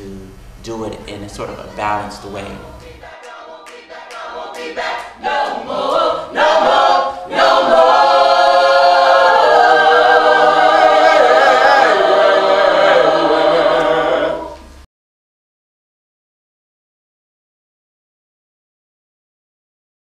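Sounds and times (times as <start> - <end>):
a cappella choir singing gospel: 1.9 - 14.9.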